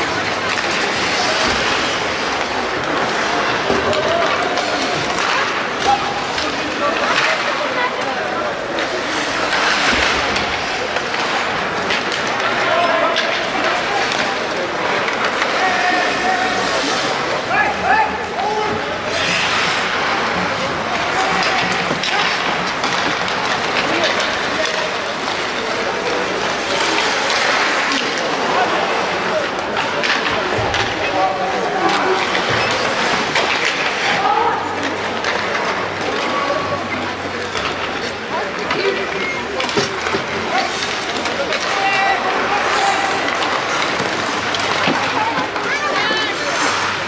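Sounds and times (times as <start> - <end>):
sticks and puck clicking: 0.0 - 17.5, 18.3 - 47.0
players calling out: 0.0 - 47.0
skates scraping ice: 0.0 - 47.0.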